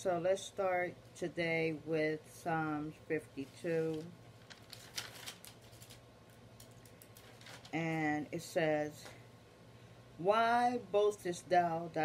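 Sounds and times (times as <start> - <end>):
low steady hum: 0.0 - 12.0
paper notes rustling: 3.4 - 6.0, 6.6 - 7.9.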